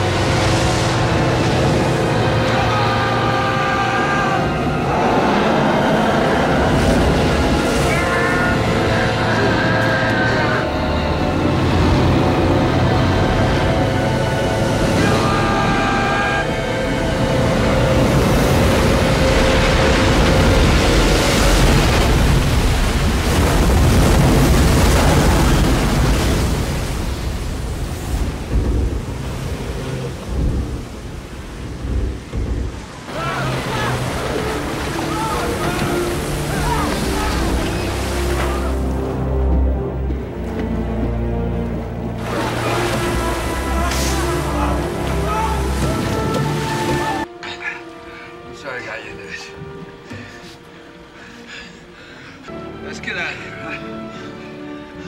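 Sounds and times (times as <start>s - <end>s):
orchestral music with held notes: 0.0s - 22.1s, 33.1s - 55.0s
heavy sea surging: 0.0s - 55.0s
rain: 0.0s - 55.0s
wind: 0.0s - 55.0s
deep rumble: 16.9s - 45.4s.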